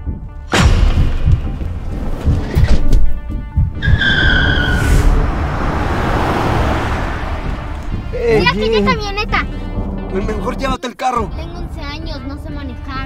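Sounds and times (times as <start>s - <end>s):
trailer music with heavy beats: 0.0s - 10.3s
steady rushing noise: 0.6s - 9.4s
car tyres squealing: 3.8s - 8.2s.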